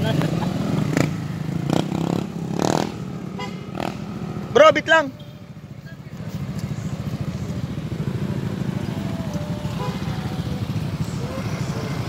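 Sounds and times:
motor scooters passing: 0.0s - 12.0s
voices: 4.0s - 12.0s.

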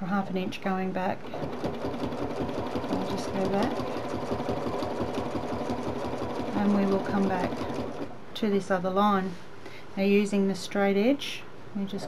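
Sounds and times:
sewing machine stitching: 1.2s - 8.2s
person speaking: 6.4s - 9.4s.

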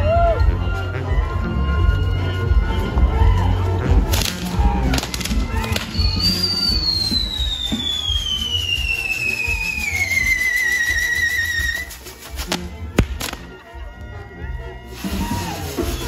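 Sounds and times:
bass-heavy music: 0.0s - 16.0s
whistling firework: 4.1s - 13.6s, 14.8s - 16.0s.

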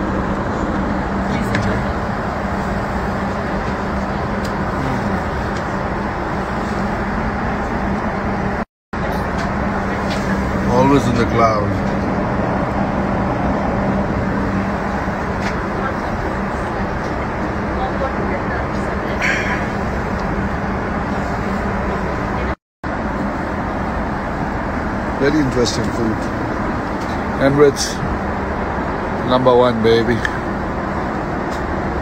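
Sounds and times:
airliner cabin rush: 0.0s - 32.0s.

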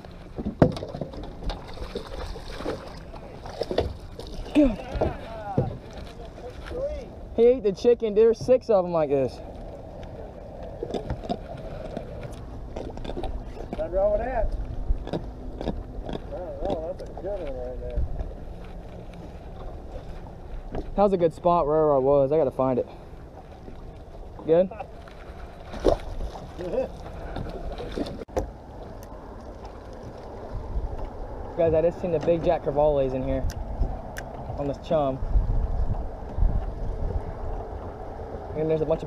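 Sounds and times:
wind rumble on microphone: 0.0s - 39.0s.

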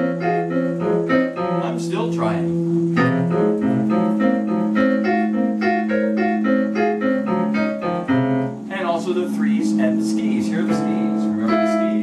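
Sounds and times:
keyboard melody notes: 0.0s - 12.0s
low held keyboard note: 0.0s - 12.0s.

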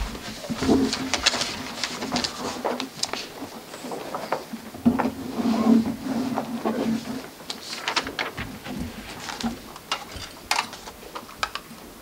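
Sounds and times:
low room noise: 0.0s - 12.0s
papers and pens clicking on table: 0.5s - 4.5s, 7.5s - 11.7s.

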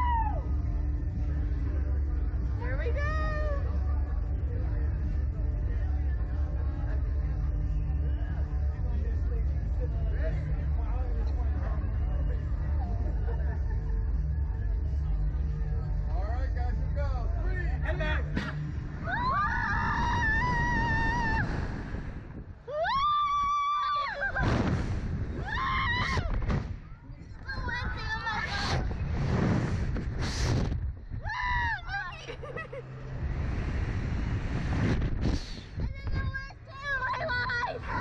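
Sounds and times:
riders screaming and laughing: 19.0s - 21.7s, 22.7s - 24.6s
air rushing past microphone: 19.8s - 22.6s, 27.8s - 31.3s, 33.1s - 36.5s.

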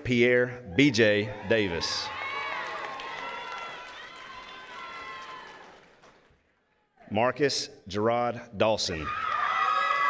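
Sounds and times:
audience cheering and whooping: 0.7s - 5.9s, 9.1s - 10.0s.

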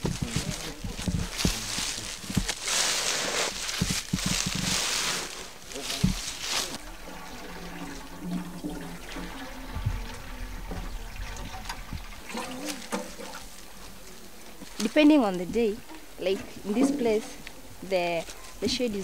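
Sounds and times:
faint voices: 0.0s - 14.7s
water splashing and pouring: 0.1s - 13.8s.

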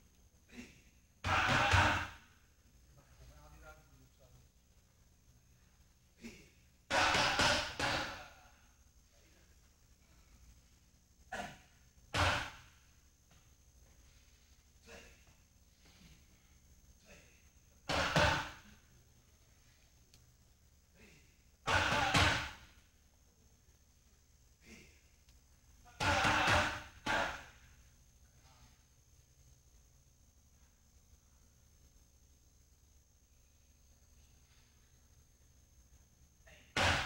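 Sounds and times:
gloved punches hitting pads: 21.7s - 22.6s, 26.0s - 27.4s.

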